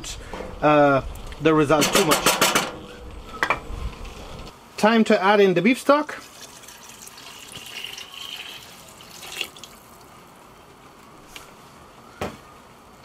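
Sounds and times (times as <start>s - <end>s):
liquid pouring into a pot: 6.2s - 10.1s.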